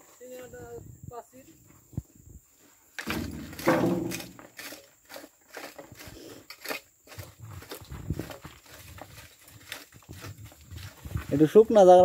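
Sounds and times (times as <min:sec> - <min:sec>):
hand rake scraping soil: 0:03.0 - 0:12.0.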